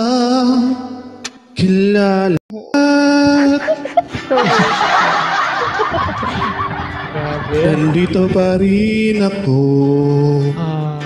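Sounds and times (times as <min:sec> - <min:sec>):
laughter: 0:03.2 - 0:08.3.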